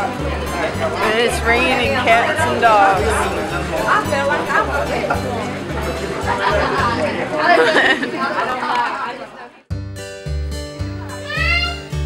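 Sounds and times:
indistinct chatter: 0.0s - 9.7s.

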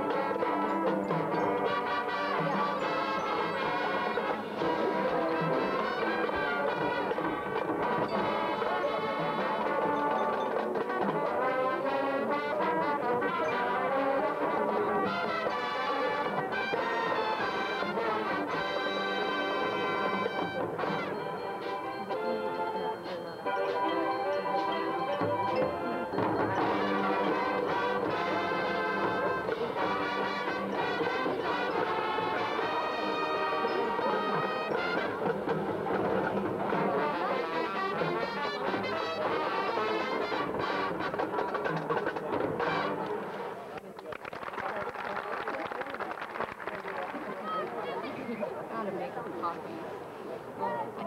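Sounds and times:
marching band playing: 0.0s - 43.7s.

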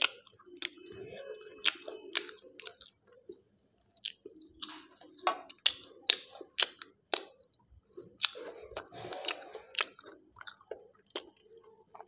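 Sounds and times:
chewing crunchy pastry: 0.0s - 12.0s.

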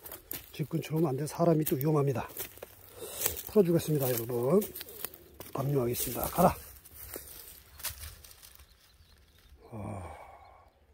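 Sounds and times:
rustling in dry leaves: 0.0s - 10.0s.

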